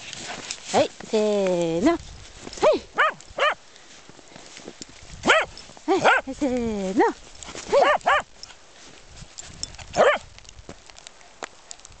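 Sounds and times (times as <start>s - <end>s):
dog barking: 2.6s - 3.6s, 5.2s - 6.3s, 7.7s - 8.3s, 10.0s - 10.2s.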